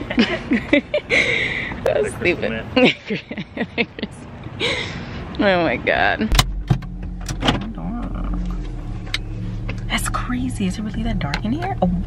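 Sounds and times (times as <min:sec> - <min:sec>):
car engine idling: 0:06.2 - 0:12.0.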